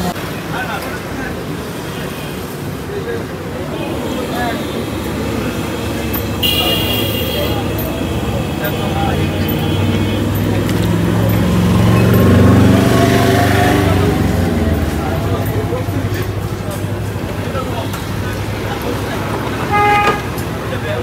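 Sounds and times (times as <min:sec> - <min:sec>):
vehicle engine passing by: 0:07.4 - 0:21.0
short horn toot: 0:19.7 - 0:20.3.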